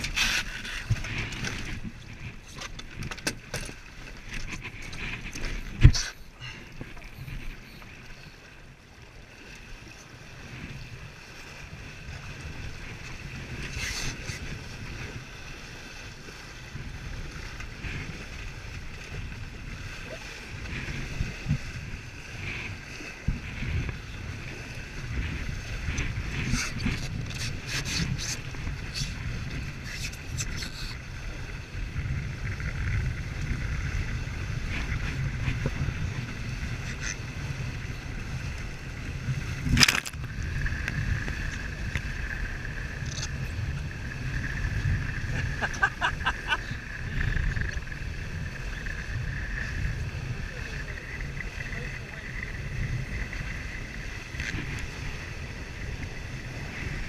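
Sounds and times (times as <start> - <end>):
wind buffeting microphone: 0.0 - 9.0, 9.8 - 57.0
water rushing along hull: 0.0 - 57.0.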